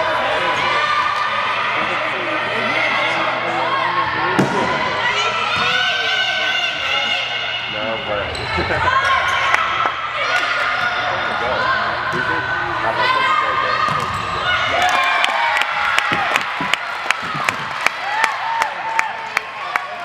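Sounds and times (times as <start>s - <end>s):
players and spectators shouting: 0.0s - 20.0s
people clapping and cheering: 14.7s - 20.0s.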